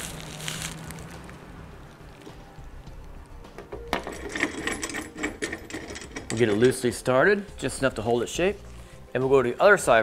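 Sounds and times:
plastic wrap rustling: 0.0s - 2.2s.

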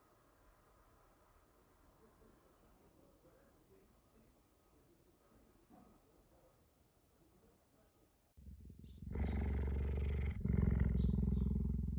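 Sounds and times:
cheetah purring: 8.4s - 11.9s.

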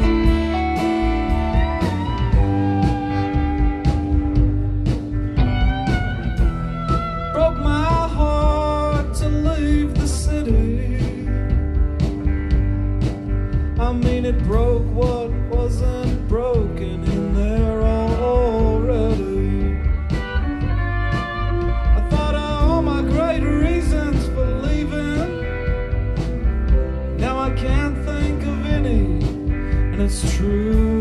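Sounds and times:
drum kit: 0.0s - 31.0s
electric guitar: 0.0s - 31.0s
man singing: 6.9s - 11.7s, 13.7s - 26.0s, 27.1s - 31.0s.

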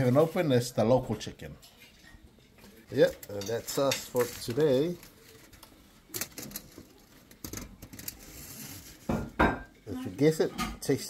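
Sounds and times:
dishes clattering: 9.0s - 9.8s, 10.4s - 11.0s.

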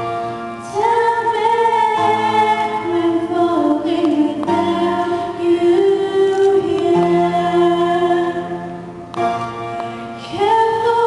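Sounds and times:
piano accompaniment: 0.0s - 11.0s
women singing in harmony: 0.6s - 8.9s, 10.2s - 11.0s.

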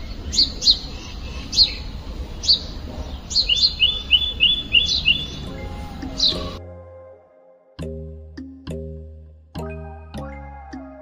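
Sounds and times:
small birds chirping: 0.0s - 6.6s.

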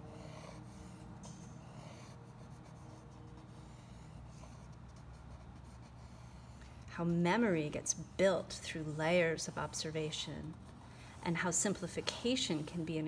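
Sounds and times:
pencil scratching on paper: 0.0s - 7.7s
steady low hum: 0.0s - 13.0s.

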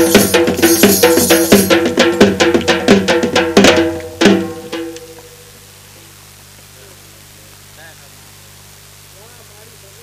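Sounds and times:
drums beaten with sticks: 0.0s - 5.5s.

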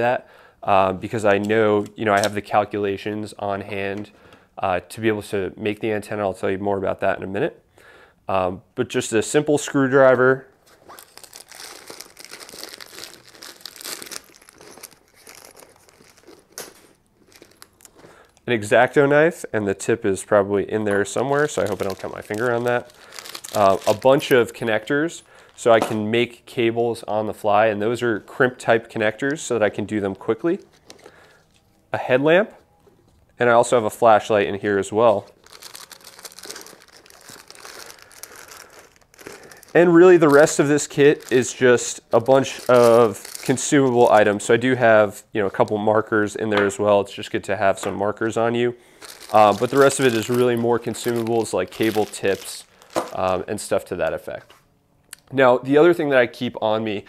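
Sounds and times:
crinkly pouch rustling: 10.5s - 18.5s, 20.9s - 25.7s, 30.4s - 31.8s, 34.6s - 46.1s, 48.8s - 53.7s.

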